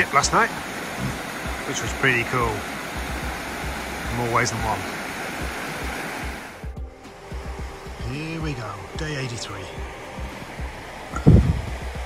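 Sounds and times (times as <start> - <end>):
stream tumbling over rocks: 0.0 - 6.7
thumps on the microphone: 1.0 - 1.6.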